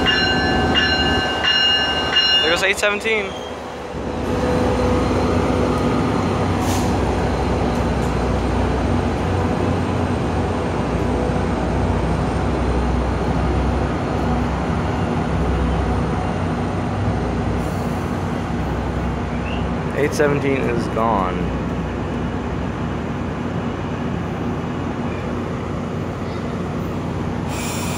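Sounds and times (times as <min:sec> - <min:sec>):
diesel locomotive rumbling: 0:00.0 - 0:27.9
train pulling out: 0:00.0 - 0:27.9.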